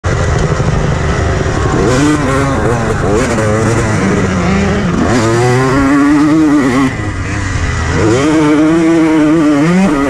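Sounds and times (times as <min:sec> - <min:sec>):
motocross engine revving high: 0:00.1 - 0:10.0.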